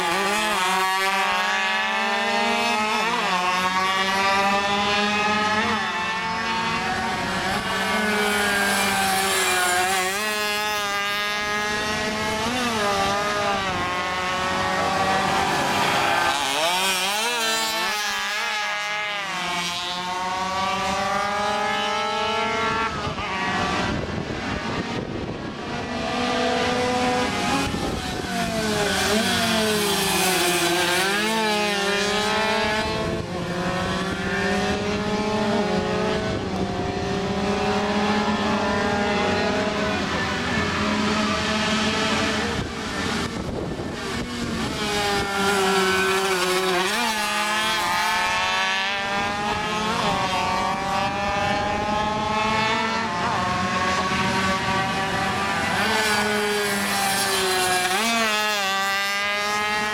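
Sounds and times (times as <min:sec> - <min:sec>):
racing motorcycles revving past: 0:00.0 - 0:59.9.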